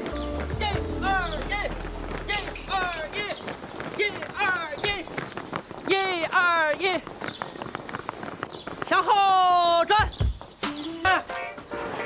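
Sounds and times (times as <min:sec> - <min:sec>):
men jogging in step: 0:00.0 - 0:11.1.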